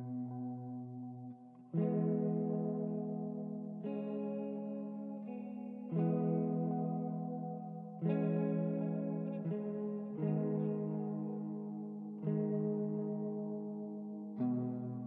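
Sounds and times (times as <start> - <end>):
ambient clean guitar chords: 0.0 - 15.0.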